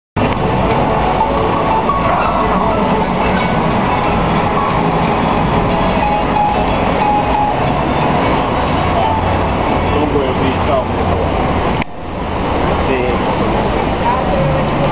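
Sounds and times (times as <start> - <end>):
city street noise rumble: 0.2 - 14.9.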